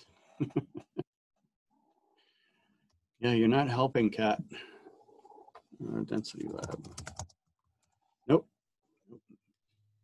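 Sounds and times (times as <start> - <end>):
computer keyboard keystrokes: 6.5 - 7.4.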